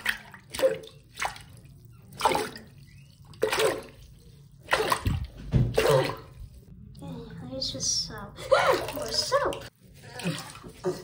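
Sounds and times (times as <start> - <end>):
bath water splashing: 0.0 - 6.7, 8.4 - 11.0.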